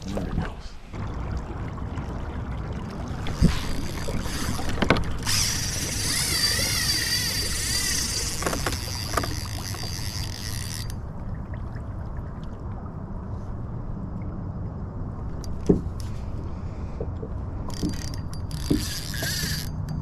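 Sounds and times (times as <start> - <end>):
water and wind rushing: 0.0 - 20.0
spinning reel whirring: 3.3 - 11.0, 17.7 - 20.0.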